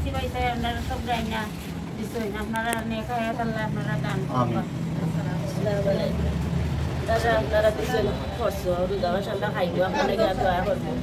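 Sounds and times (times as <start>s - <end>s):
woman talking: 0.0s - 4.4s, 5.0s - 6.4s, 7.0s - 11.0s.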